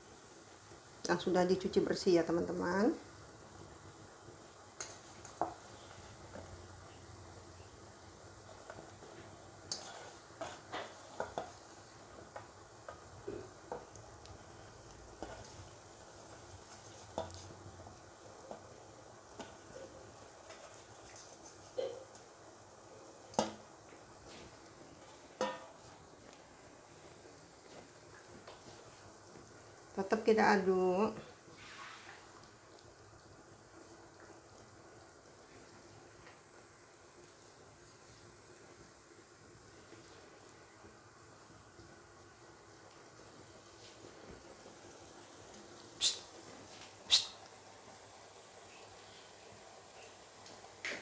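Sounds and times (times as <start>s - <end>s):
gravy bubbling in a wok: 0.0s - 51.0s
metal utensils clinking on pan: 25.4s - 25.7s.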